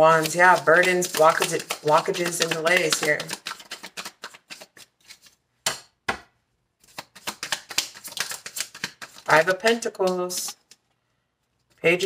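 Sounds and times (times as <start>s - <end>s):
cards being shuffled: 0.1s - 5.4s, 6.8s - 10.8s.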